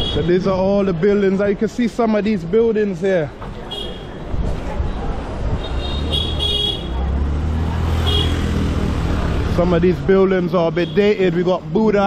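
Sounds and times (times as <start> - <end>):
scooter and vehicle engines passing: 3.6 - 12.0.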